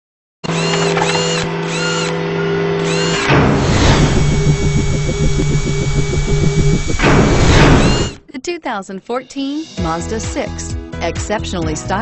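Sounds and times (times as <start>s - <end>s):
machine-like hum: 0.4s - 8.2s
whoosh sweep: 3.4s - 8.2s
fast pulsing beat: 3.6s - 8.2s.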